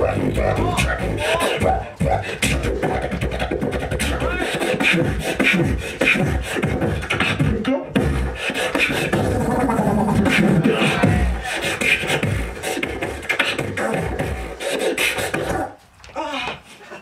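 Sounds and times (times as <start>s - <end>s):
beatboxing through microphone: 0.0s - 15.8s.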